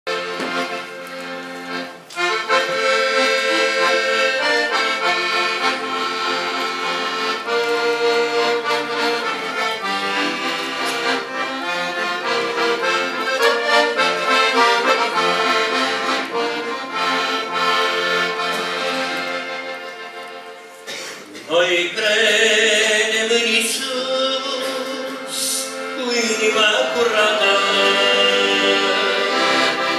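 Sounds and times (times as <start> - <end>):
piano accordion playing hymn: 0.1 - 21.0, 21.6 - 29.9.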